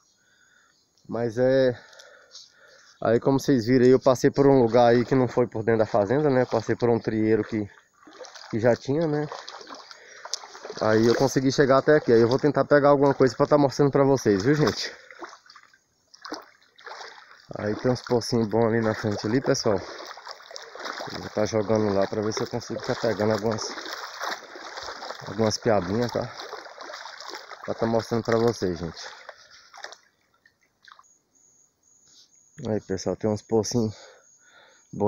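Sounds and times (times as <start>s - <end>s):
creek water running: 0.3s - 31.1s.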